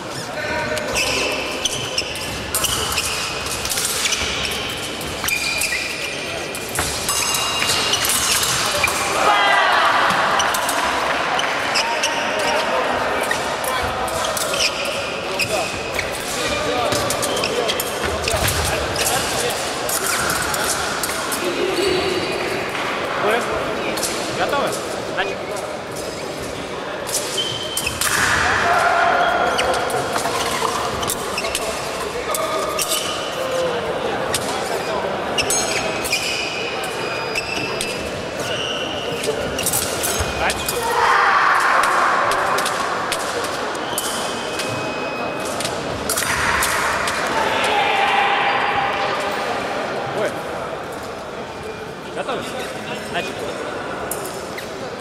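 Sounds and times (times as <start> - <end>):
echoing voices: 0.0 - 37.2, 38.0 - 55.0.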